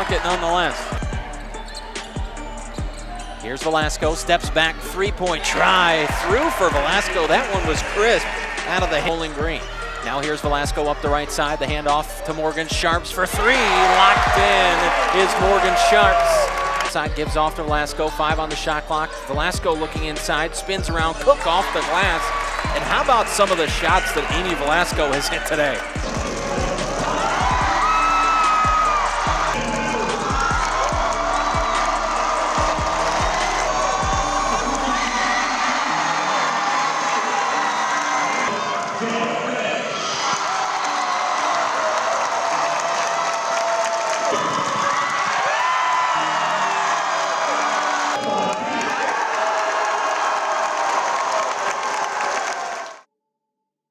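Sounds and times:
crowd cheering and shouting: 0.0s - 17.6s, 18.2s - 53.1s
music: 0.0s - 53.1s.

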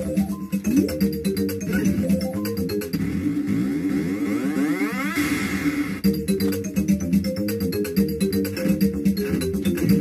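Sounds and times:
video game background music: 0.0s - 10.0s
rising pitch sweep: 3.2s - 6.0s.

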